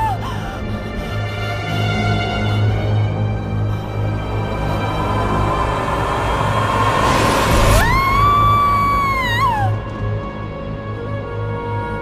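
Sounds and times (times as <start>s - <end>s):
low pulsing drone: 0.0s - 12.0s
rushing swell: 3.4s - 9.6s.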